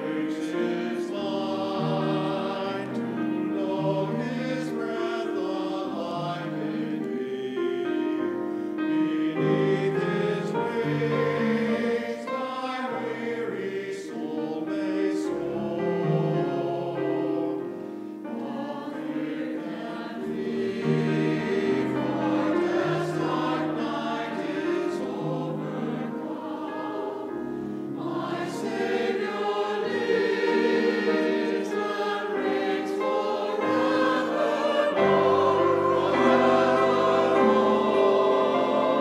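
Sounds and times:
grand piano: 0.0s - 39.0s
mixed choir singing: 0.0s - 39.0s.

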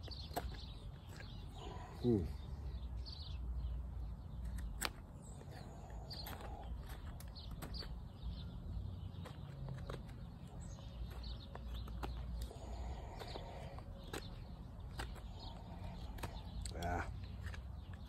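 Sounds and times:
bird chirps: 0.0s - 18.0s
wind and handling rumble: 0.0s - 18.0s.

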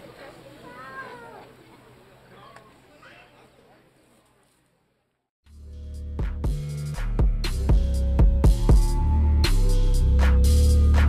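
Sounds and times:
faint high-pitched voice calling: 0.6s - 1.6s.

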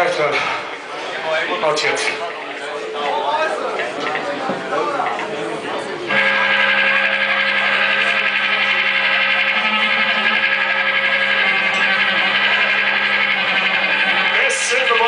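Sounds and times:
band droning chord: 6.1s - 15.0s.

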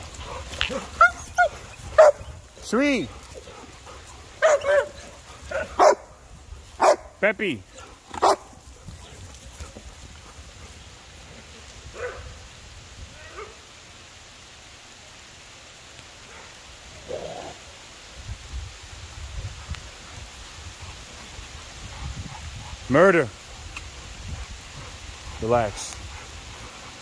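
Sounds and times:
outdoor background noise: 0.0s - 27.0s
faint dog barks: 0.3s - 2.3s, 4.4s - 6.2s, 6.8s - 9.2s, 11.9s - 12.4s, 13.1s - 13.7s, 16.2s - 17.6s.

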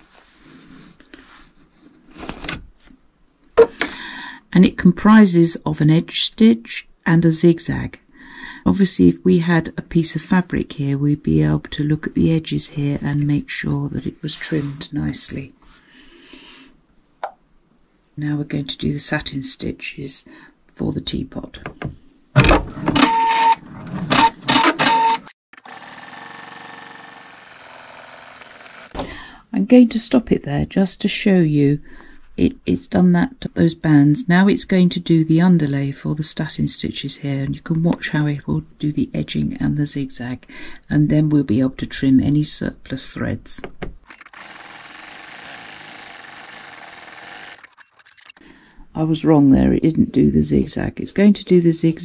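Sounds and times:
embroidery machine stitching: 22.4s - 29.0s, 44.1s - 48.4s
machine whine: 44.1s - 48.4s.

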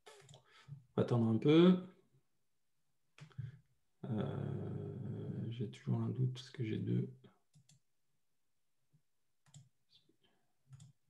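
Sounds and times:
computer mouse clicks: 7.5s - 7.8s, 9.4s - 9.7s, 10.7s - 11.0s.

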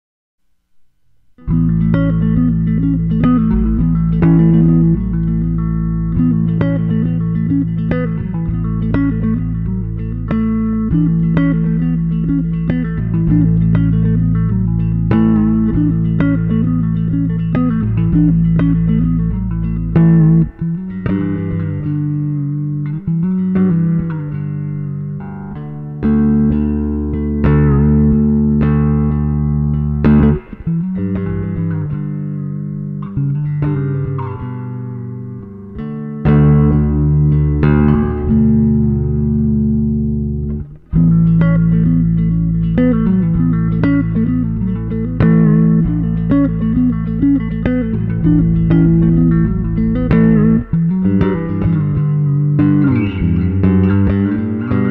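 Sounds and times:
electric bass plucked fingerstyle: 0.5s - 54.9s.

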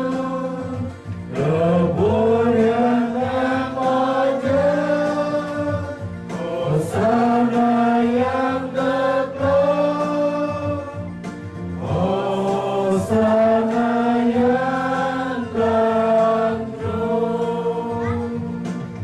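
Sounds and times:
choir singing a hymn: 0.0s - 19.0s
electronic keyboard: 0.0s - 19.0s.

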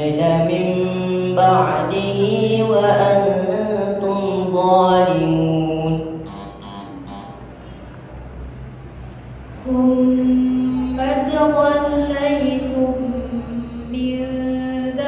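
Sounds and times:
person reciting melodically: 0.0s - 7.6s, 9.5s - 15.0s.

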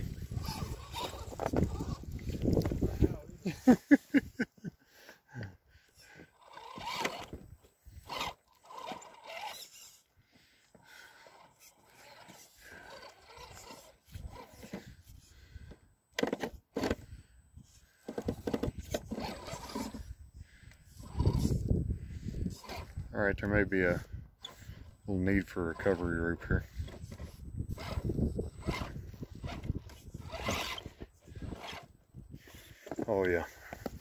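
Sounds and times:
tires grinding over rock and gravel: 0.0s - 3.2s, 6.2s - 10.0s, 10.8s - 15.6s, 17.7s - 20.2s, 20.9s - 31.9s.

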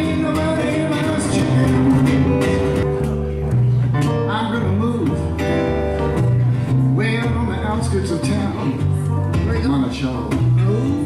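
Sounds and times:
keyboard piano: 0.0s - 11.0s
strummed acoustic guitar: 0.0s - 11.0s
upright bass notes: 0.0s - 11.0s.

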